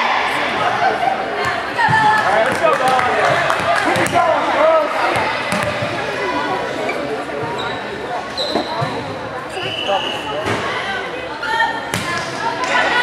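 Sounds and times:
people chatting: 0.0 - 13.0
whistle blast: 9.6 - 10.4.

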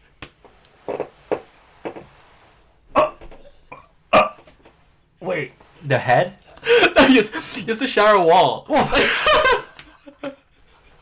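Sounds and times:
man laughing: 6.6 - 7.5, 8.7 - 11.0.

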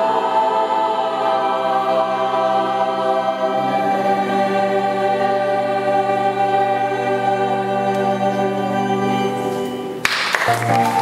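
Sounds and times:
children's choir singing: 0.0 - 11.0.

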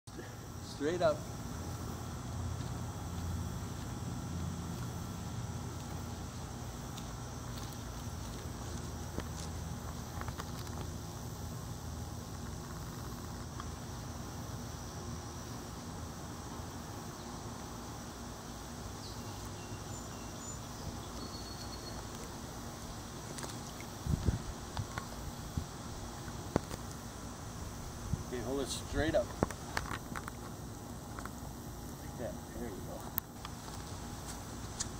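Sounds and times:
steady low hiss: 0.1 - 34.9.

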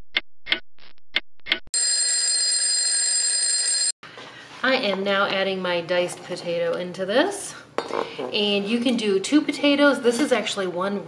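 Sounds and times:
alarm ringing: 1.8 - 3.9.

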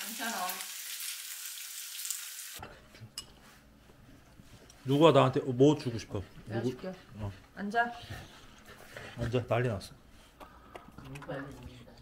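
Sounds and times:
meat sizzling on grill: 0.0 - 2.6.

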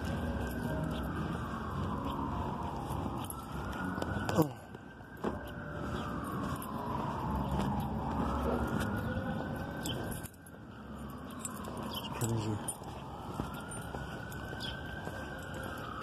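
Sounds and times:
distant siren wailing: 0.0 - 16.0
street traffic hum: 0.0 - 16.0.

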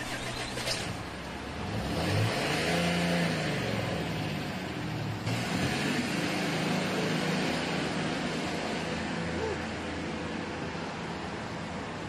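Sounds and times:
traffic and road noise: 0.0 - 12.0
vehicle engine running: 0.0 - 12.0.

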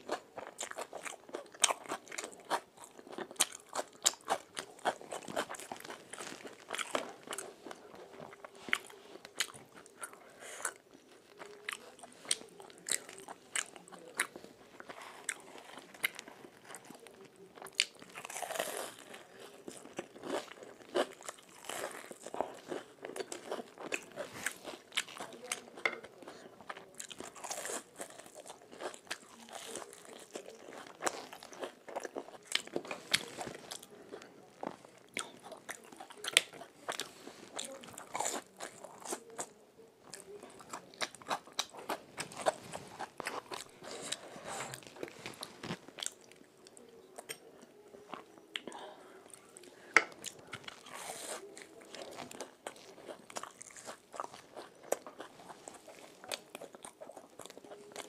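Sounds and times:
crunching and chewing fried food: 0.0 - 58.0.

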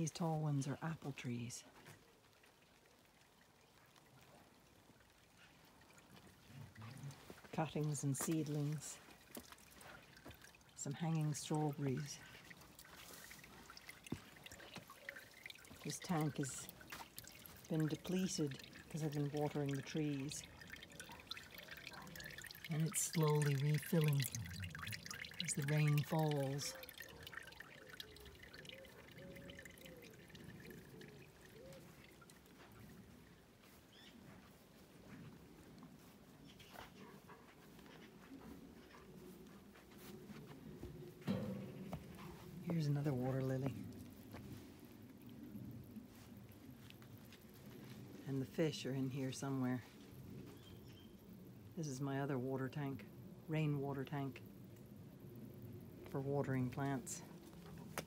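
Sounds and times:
water trickling into tank: 0.0 - 35.0, 40.0 - 58.0.

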